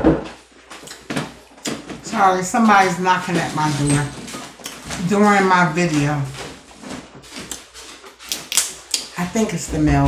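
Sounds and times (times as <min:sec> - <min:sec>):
crab shell cracking: 0:08.2 - 0:09.1.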